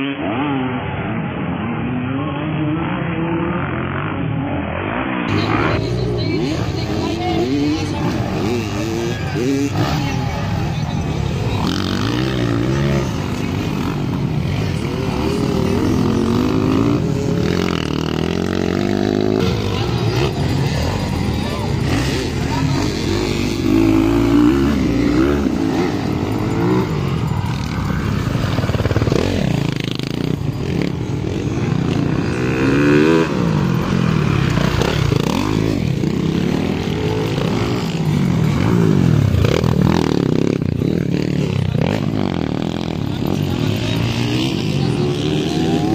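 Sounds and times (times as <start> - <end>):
dirt bike engines revving: 0.0 - 45.9
voices: 0.0 - 45.9.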